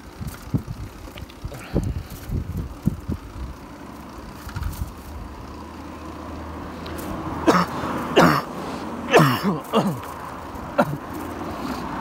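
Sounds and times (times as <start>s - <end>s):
bicycle rolling on a road: 0.0s - 12.0s
wind: 0.0s - 12.0s
person coughing: 7.4s - 8.5s, 9.1s - 10.1s, 10.8s - 11.0s.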